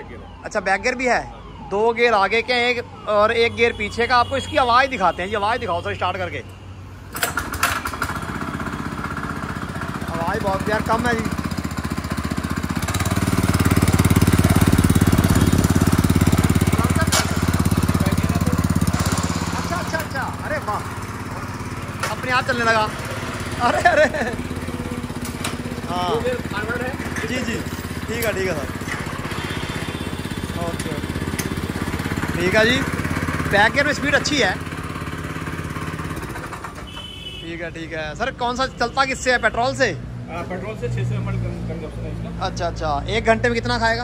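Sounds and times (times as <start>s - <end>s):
petrol engine running: 7.1s - 37.3s.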